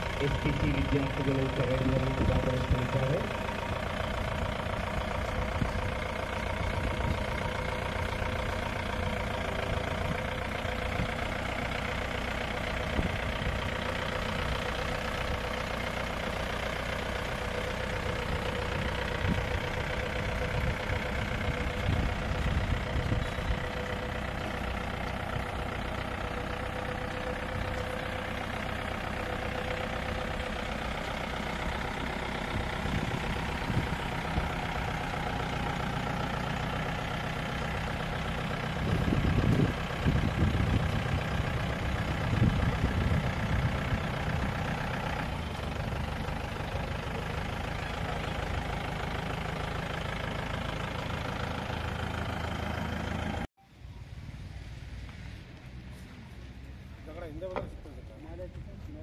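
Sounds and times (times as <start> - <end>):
jeep engine running: 0.0 - 59.0.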